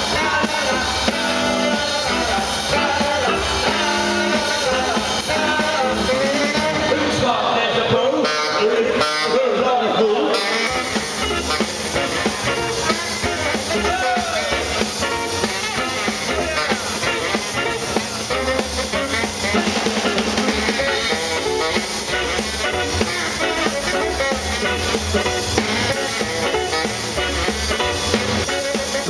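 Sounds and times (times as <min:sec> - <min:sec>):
tenor saxophone: 0:00.0 - 0:06.9, 0:08.1 - 0:09.6, 0:10.3 - 0:29.0
drum kit: 0:00.0 - 0:07.4, 0:10.3 - 0:29.0
upright double bass: 0:00.0 - 0:07.4, 0:10.3 - 0:29.0
person singing: 0:00.0 - 0:09.5, 0:10.3 - 0:29.0.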